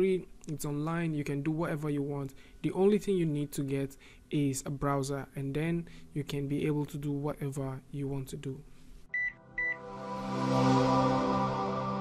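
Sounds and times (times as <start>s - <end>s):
high electronic beeps: 9.2s - 9.8s
sustained musical chord: 9.4s - 12.0s.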